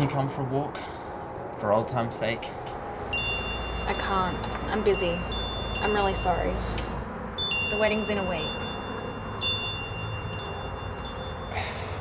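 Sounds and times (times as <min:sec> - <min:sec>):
high chime tones ringing: 0:03.1 - 0:06.8, 0:07.4 - 0:12.0.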